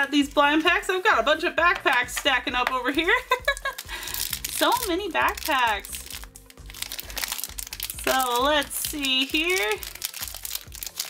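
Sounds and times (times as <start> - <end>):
background music: 0.0 - 11.0
plastic wrapper crinkling: 2.6 - 11.0.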